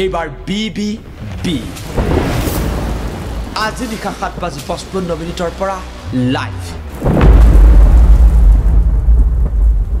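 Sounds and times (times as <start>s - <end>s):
thunder rumbling: 1.1s - 4.5s, 6.9s - 10.0s.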